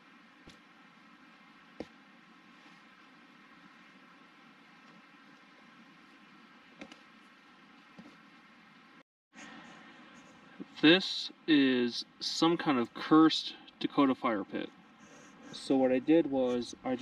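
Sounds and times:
faint background hiss: 0.0 - 17.0.

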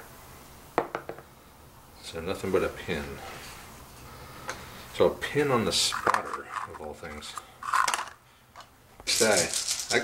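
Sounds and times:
man talking: 2.0 - 3.3, 5.0 - 7.4, 9.0 - 10.0
dice rattling in hand: 9.1 - 10.0.

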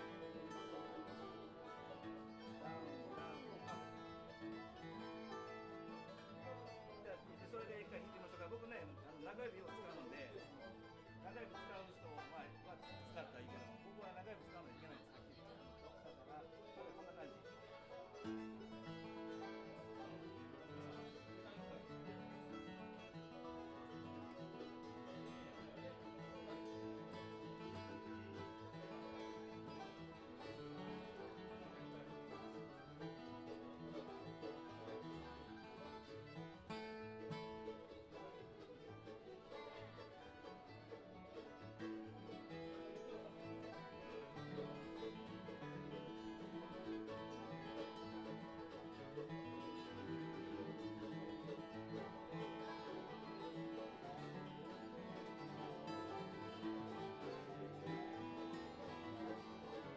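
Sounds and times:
fiddle playing: 0.0 - 59.9
flatpicked acoustic guitars: 0.0 - 59.9.

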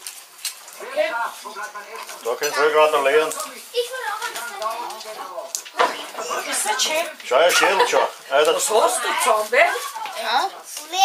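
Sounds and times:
child speaking: 3.4 - 5.4, 9.7 - 11.0.

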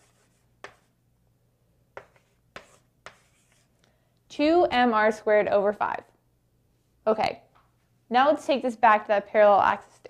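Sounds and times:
chalk strokes on blackboard: 0.0 - 1.0, 2.0 - 3.8, 9.6 - 10.0.

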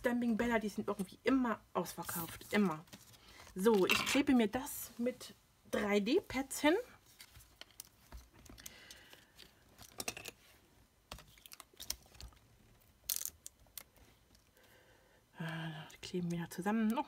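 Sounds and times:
paper pieces clicking and rustling: 13.0 - 14.0.

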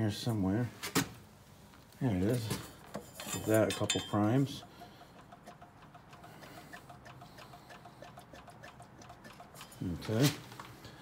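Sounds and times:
fuel pump lever clicking: 4.6 - 9.8.

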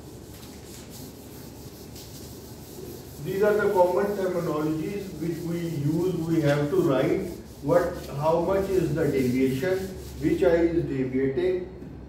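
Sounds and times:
eraser rubbing on whiteboard: 0.0 - 10.8.

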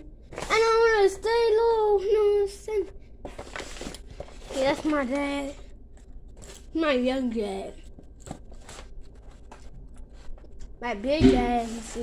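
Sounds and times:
child's voice: 0.0 - 3.0, 4.5 - 5.7, 6.7 - 7.8, 10.8 - 12.0.

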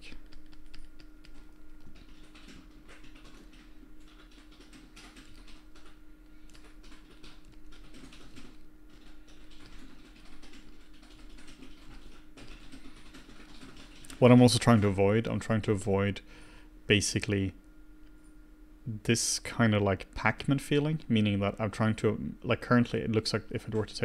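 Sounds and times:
keyboard keys clicking: 0.0 - 14.2
faint steady hum: 0.0 - 24.0.

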